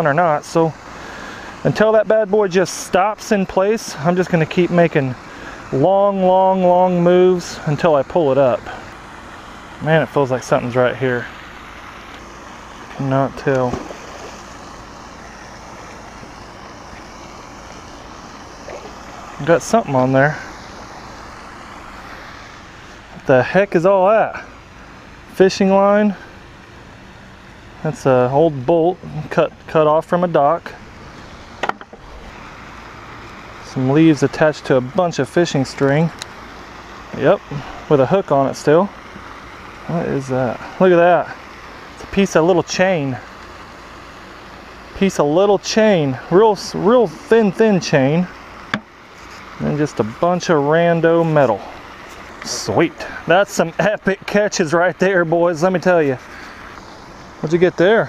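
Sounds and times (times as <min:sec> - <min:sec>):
outdoor background hiss: 0:00.0 - 0:58.0
person speaking: 0:09.8 - 0:11.4, 0:12.9 - 0:16.4, 0:17.1 - 0:20.7, 0:23.0 - 0:24.6, 0:27.8 - 0:30.9, 0:37.1 - 0:39.0, 0:45.0 - 0:58.0.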